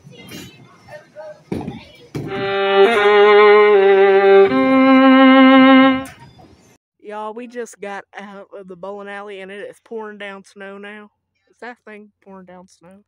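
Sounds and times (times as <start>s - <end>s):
long held wavering music notes: 2.3s - 6.1s.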